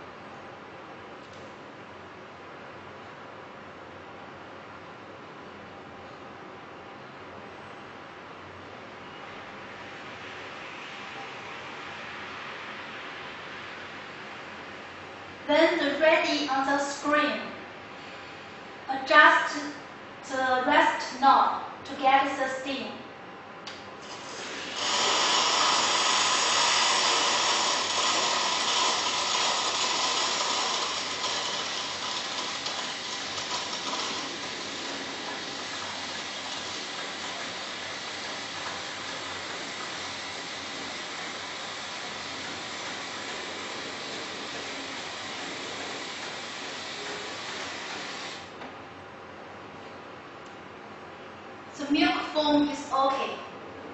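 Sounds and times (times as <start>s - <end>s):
milk frother steam hissing: 24.0s - 48.6s.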